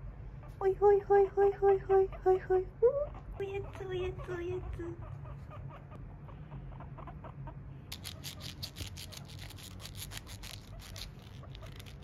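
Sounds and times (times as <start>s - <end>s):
guinea pigs clucking: 0.0s - 12.0s.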